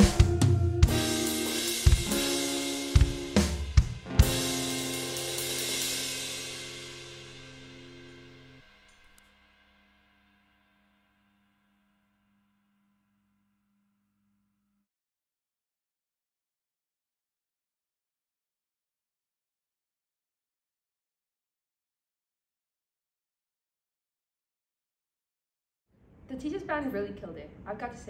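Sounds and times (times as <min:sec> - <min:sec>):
electronic drum hits: 0:00.0 - 0:08.6
held band chord: 0:00.0 - 0:09.2
cymbal wash: 0:00.0 - 0:12.8.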